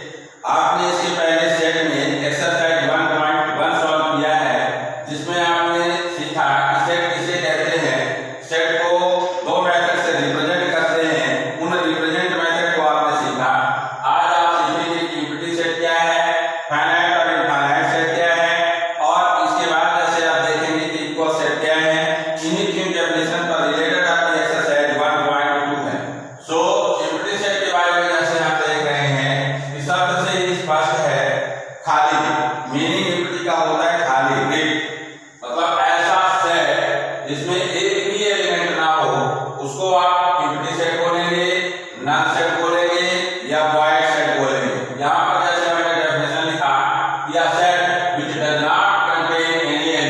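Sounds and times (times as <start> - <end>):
man speaking: 0.0 - 34.8, 35.4 - 50.0
man talking sing-song: 0.0 - 34.8, 35.4 - 50.0.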